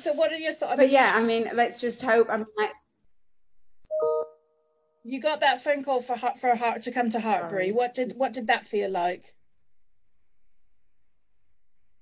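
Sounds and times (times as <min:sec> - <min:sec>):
electronic chime: 0:03.9 - 0:04.6.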